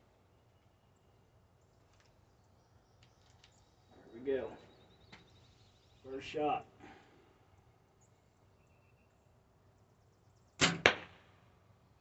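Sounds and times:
arrow hitting target: 0:10.6 - 0:11.4.

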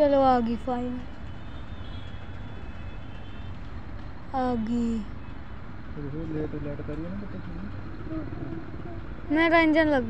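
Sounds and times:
low engine rumble: 0:03.6 - 0:10.0.

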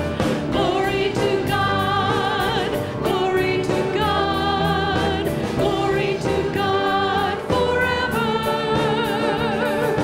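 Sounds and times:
bass and drums: 0:00.0 - 0:10.0
congregation singing: 0:00.0 - 0:10.0
women singing with vibrato: 0:00.0 - 0:10.0.

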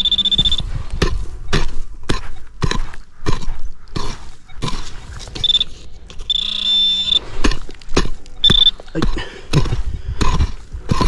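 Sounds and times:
pinpointer beeping: 0:00.0 - 0:00.7, 0:05.4 - 0:07.3, 0:08.2 - 0:09.0
pick-mattock chopping stony soil: 0:00.0 - 0:11.0.

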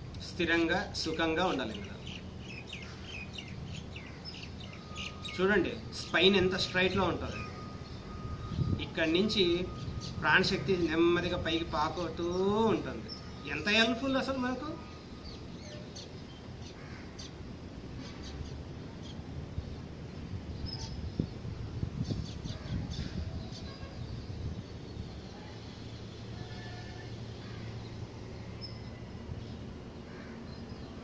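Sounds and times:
small birds chirping: 0:00.1 - 0:31.0.

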